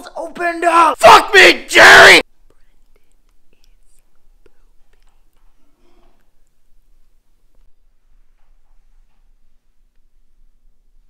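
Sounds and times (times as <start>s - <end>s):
faint whispered voice: 2.2s - 6.5s.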